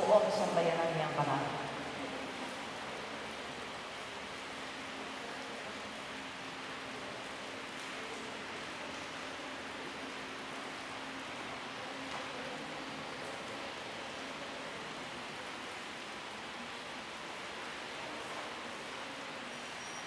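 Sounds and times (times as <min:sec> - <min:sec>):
steady background hiss: 0:00.0 - 0:20.0.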